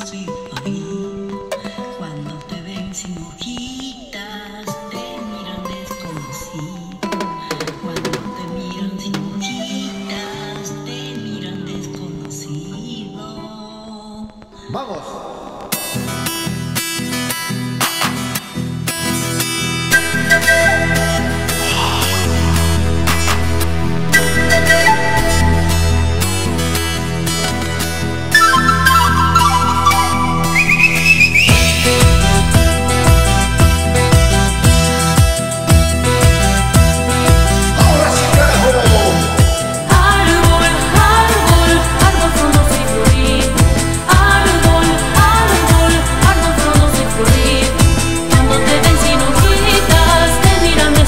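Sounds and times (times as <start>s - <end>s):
acoustic guitar strummed: 15.7s - 42.1s
held melody notes: 19.9s - 46.9s
steady bass line: 19.9s - 51.0s
drum beat: 31.5s - 50.6s
sustained backing: 35.9s - 51.0s.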